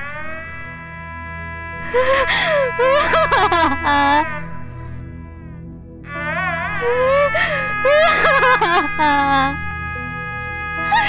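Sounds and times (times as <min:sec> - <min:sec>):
woman crying and sobbing: 0:01.8 - 0:04.5, 0:06.7 - 0:09.7, 0:10.8 - 0:11.0.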